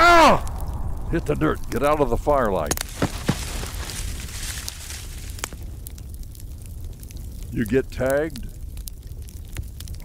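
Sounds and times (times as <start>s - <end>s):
low rumble: 0.0s - 7.6s
campfire crackling: 0.0s - 10.0s.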